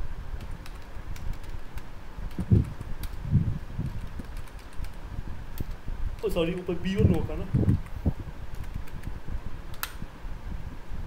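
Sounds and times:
fan-like hum: 0:00.0 - 0:11.0
computer keystrokes: 0:00.4 - 0:03.2, 0:03.8 - 0:05.0, 0:07.0 - 0:09.1
sharp click: 0:07.0 - 0:10.0.

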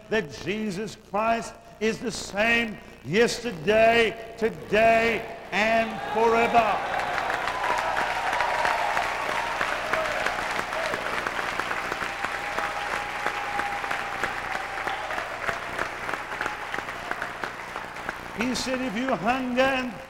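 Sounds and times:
congregation applauding: 0:05.8 - 0:20.0.

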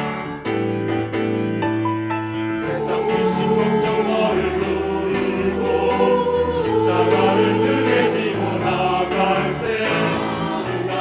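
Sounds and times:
choir singing a hymn: 0:02.5 - 0:11.0.

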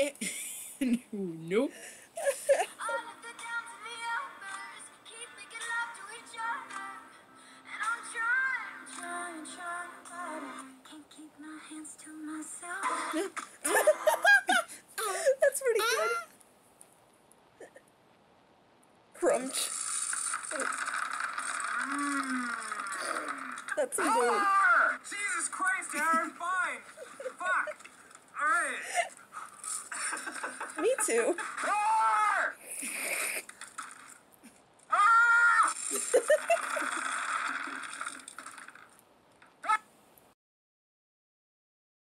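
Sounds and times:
high-pitched cry: 0:15.8 - 0:16.3, 0:24.0 - 0:25.0, 0:34.9 - 0:36.5, 0:39.6 - 0:39.9
hard candy crunching: 0:19.7 - 0:23.8, 0:35.7 - 0:38.9.

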